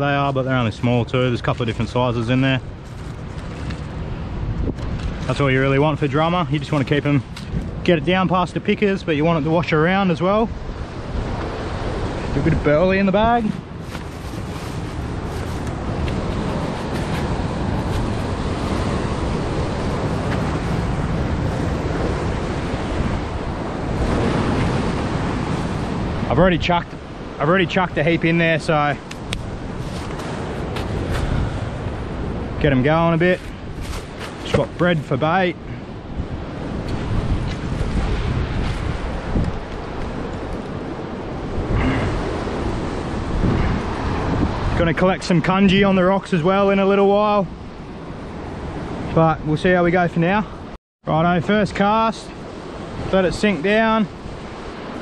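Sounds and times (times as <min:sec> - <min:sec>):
wind buffeting microphone: 0:00.0 - 0:50.7
ocean surf breaking on rocks: 0:00.0 - 0:55.0
surf breaking against rocks: 0:11.2 - 0:35.4.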